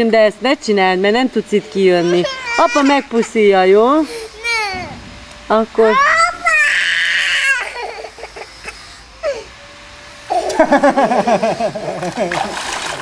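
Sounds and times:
girl crying: 0:02.0 - 0:03.4, 0:04.0 - 0:05.0, 0:05.9 - 0:08.5, 0:09.2 - 0:09.5
water splashing: 0:11.9 - 0:13.0.

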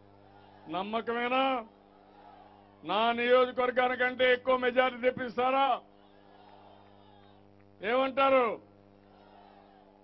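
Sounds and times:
electrical hum: 0:00.0 - 0:10.0
man speaking over public address: 0:00.7 - 0:01.7, 0:02.8 - 0:05.9, 0:07.8 - 0:08.7.

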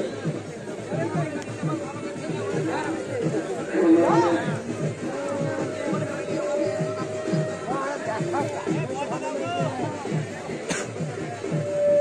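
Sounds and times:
men talking and calling: 0:00.0 - 0:12.0
music: 0:00.0 - 0:12.0.

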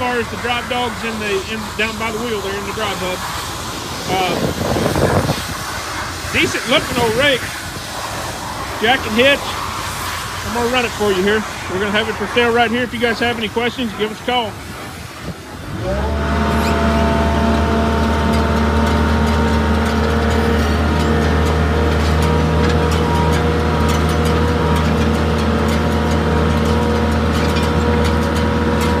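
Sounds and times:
loader engine starting and running: 0:00.0 - 0:29.0.

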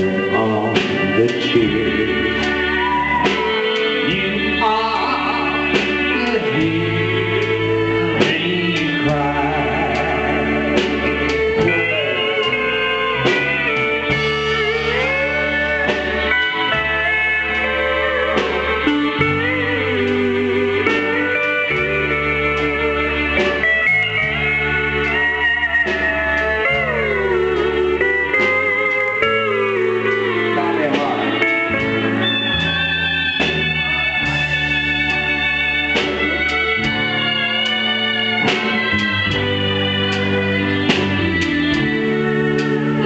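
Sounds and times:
drums: 0:00.0 - 0:43.0
electric bass: 0:00.0 - 0:43.0
pedal steel guitar sliding notes: 0:00.0 - 0:43.0.

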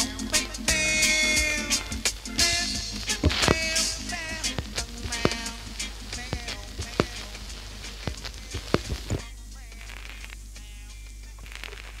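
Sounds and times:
record clicks: 0:00.0 - 0:10.5, 0:11.1 - 0:12.0
low steady hum: 0:00.0 - 0:12.0
reggae song: 0:00.0 - 0:12.0
vinyl surface crackle: 0:00.0 - 0:12.0.

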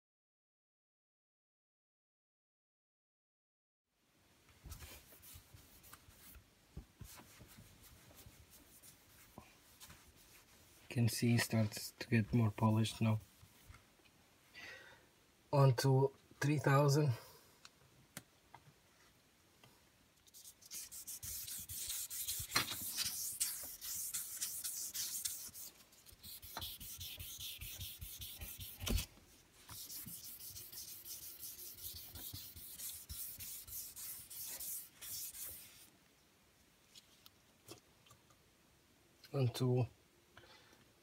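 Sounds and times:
sandpaper rubbing on wet finish: 0:20.3 - 0:29.1, 0:29.7 - 0:35.9.

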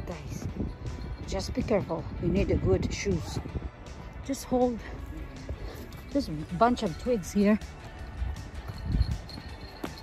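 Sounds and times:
quiet background music: 0:00.0 - 0:10.0
footsteps on dirt trail: 0:08.6 - 0:10.0.

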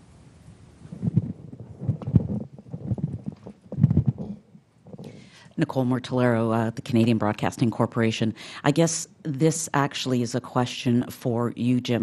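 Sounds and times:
microphone handling thumps: 0:00.8 - 0:05.2.

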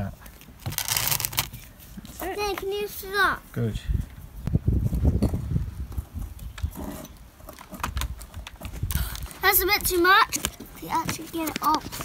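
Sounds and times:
wind rumble on microphone: 0:03.6 - 0:09.4.

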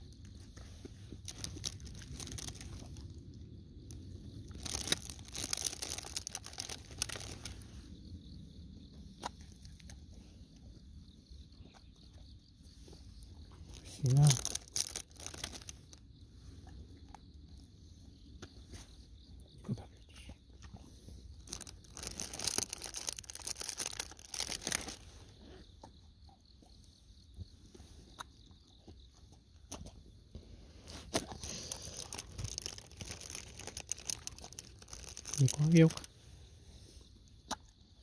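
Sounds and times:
insect song: 0:00.0 - 0:38.0
snack wrapper crinkling: 0:00.3 - 0:03.2, 0:03.9 - 0:07.6, 0:13.7 - 0:16.0, 0:21.4 - 0:25.1, 0:30.8 - 0:36.1
dogs chewing crisp treats: 0:00.4 - 0:03.3, 0:04.3 - 0:07.6, 0:13.8 - 0:15.9, 0:21.4 - 0:25.0, 0:30.9 - 0:36.1.

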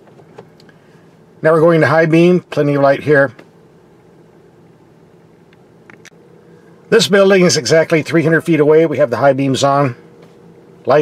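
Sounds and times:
car interior hum: 0:00.0 - 0:11.0.

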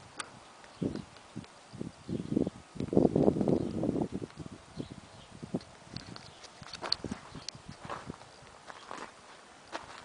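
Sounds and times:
footsteps on hard ground: 0:06.0 - 0:10.0.

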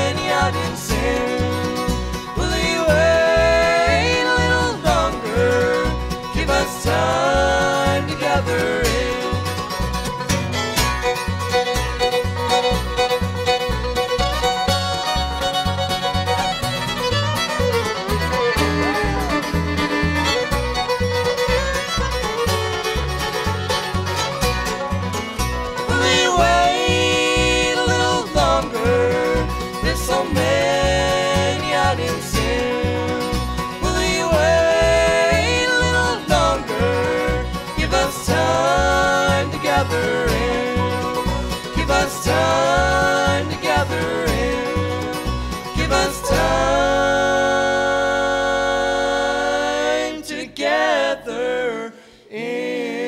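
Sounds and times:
upright bass steady beat: 0:00.0 - 0:23.5
fiddle with sliding notes: 0:00.0 - 0:50.2
bluegrass band playing: 0:00.0 - 0:51.7.

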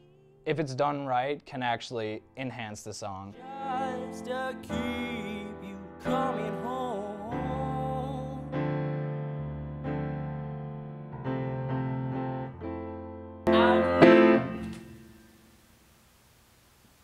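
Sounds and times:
grand piano chords: 0:02.0 - 0:15.4.

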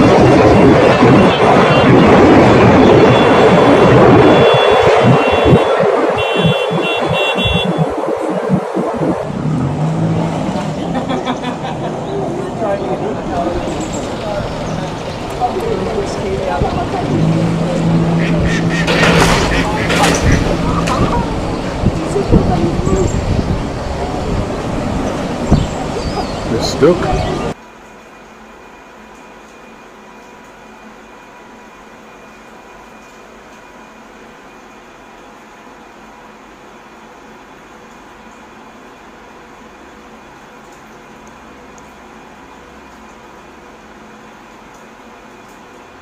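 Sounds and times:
boat motor humming: 0:00.0 - 0:27.6
rushing noise: 0:00.0 - 0:27.6.

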